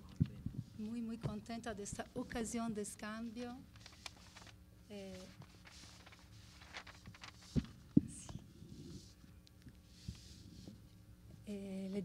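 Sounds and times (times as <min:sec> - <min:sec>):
faint rustling: 0:03.0 - 0:11.0.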